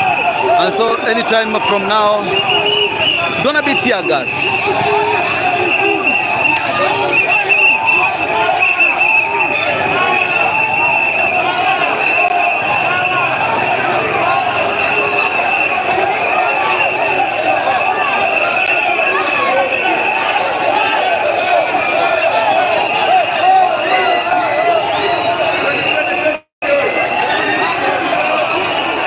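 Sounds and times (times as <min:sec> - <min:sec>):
crowd shouting and chanting: 0:00.0 - 0:29.0.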